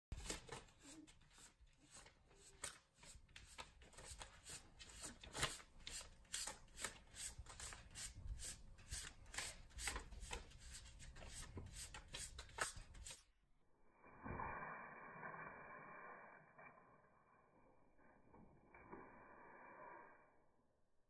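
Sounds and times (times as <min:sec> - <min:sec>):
paper banknotes rustling: 0:00.1 - 0:13.2.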